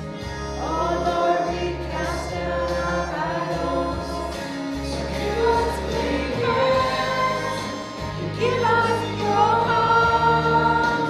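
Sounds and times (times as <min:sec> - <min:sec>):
women singing gospel song: 0:00.6 - 0:11.0.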